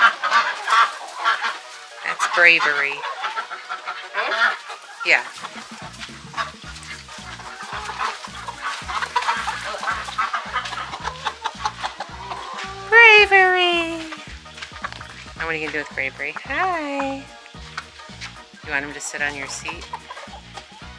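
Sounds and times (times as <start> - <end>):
wing flapping: 0.0 - 12.8
background music with steady beat: 0.0 - 20.9
hens clucking and squawking: 0.0 - 20.9.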